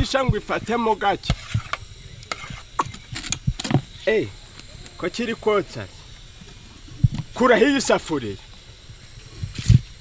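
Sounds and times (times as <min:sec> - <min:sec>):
cooking pot scraping and knocking: 0:01.2 - 0:03.9.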